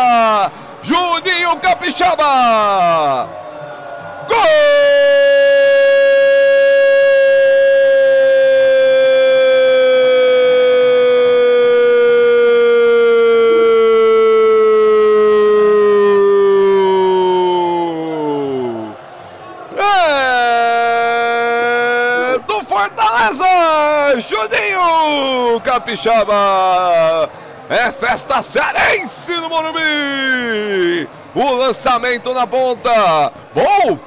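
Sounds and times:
man speaking rapidly: 0.0 - 3.2, 21.8 - 34.0
commentator's drawn-out goal shout: 19.8 - 34.0.

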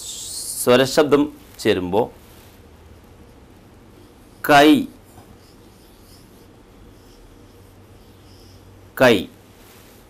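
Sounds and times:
marker pen on whiteboard: 2.6 - 9.6.

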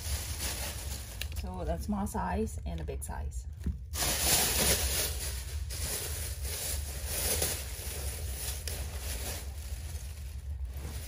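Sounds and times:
plastic bag rustling: 0.0 - 1.6, 3.6 - 11.0.

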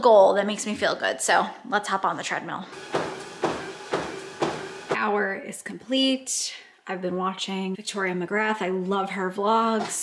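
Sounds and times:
footfalls on treadmill belt: 2.8 - 5.0
treadmill motor hum: 2.8 - 5.0.

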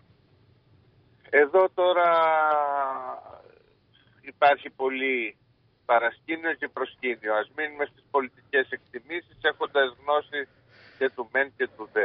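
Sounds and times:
man's drawn-out hesitation sound: 1.3 - 12.0.

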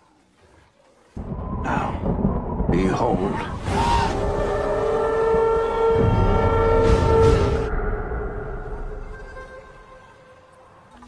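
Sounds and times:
low rumble: 1.2 - 9.9.

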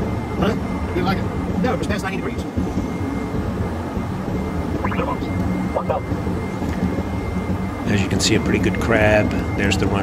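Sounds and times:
jet engines and airflow rumble: 0.0 - 10.0
faint steady high tone: 4.7 - 6.0
voice fragments: 4.9 - 5.3.

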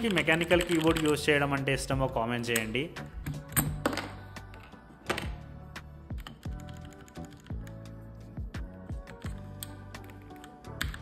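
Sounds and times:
mechanical keyboard key clacks: 0.0 - 1.2
background music with beat: 0.0 - 11.0.

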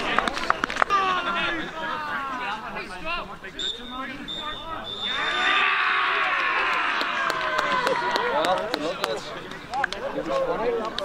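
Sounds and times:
men talking and calling out: 0.0 - 11.0
thin high tone: 3.6 - 5.7.

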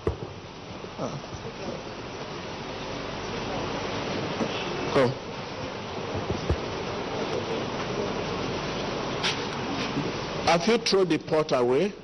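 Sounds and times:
steady buzzing hum: 0.0 - 12.0.

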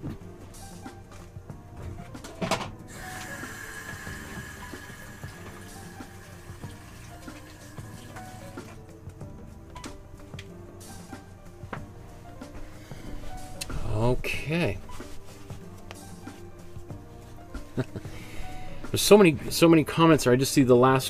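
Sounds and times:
tap water running into sink: 2.9 - 8.8.

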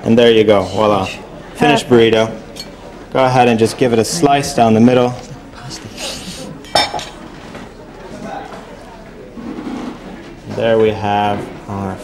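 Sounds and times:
crockery handling: 6.6 - 8.3.

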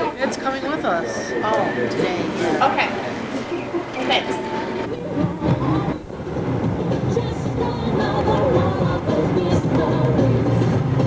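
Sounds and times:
vehicle interior rumble: 5.0 - 11.0.

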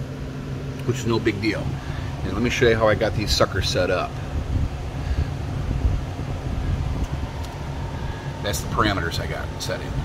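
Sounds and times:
low machinery rumble: 0.0 - 10.0.

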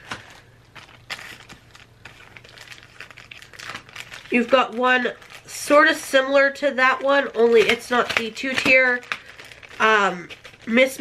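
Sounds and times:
plastic bags crinkling: 0.0 - 11.0.

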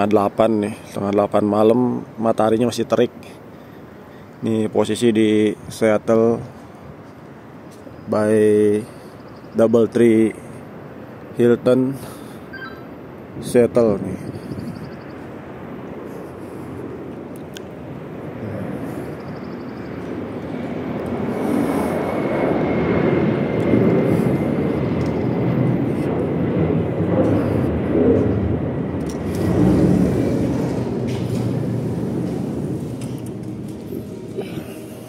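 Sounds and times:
jet airliner passing overhead: 0.0 - 35.0.

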